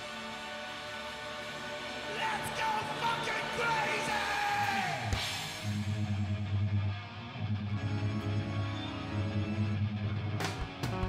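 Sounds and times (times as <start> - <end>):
drums: 0.0 - 7.4, 10.0 - 11.0
distorted electric guitar riff: 2.5 - 11.0.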